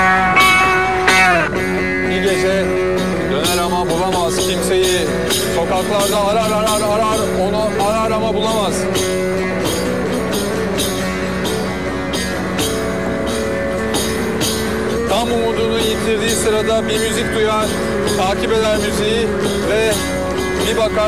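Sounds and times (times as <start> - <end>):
jingling beat: 0.0 - 21.0
plucked long-necked lute: 0.0 - 21.0
man singing: 2.0 - 9.2, 14.9 - 21.0.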